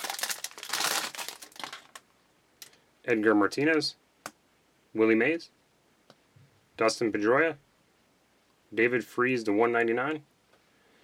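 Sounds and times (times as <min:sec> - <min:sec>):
foil wrapper crinkling: 0:00.0 - 0:02.1.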